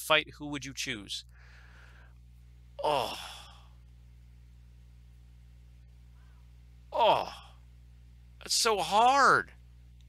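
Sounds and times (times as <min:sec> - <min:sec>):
low electrical hum: 0:00.0 - 0:10.0
man sighing oh: 0:02.8 - 0:03.8, 0:06.9 - 0:07.6.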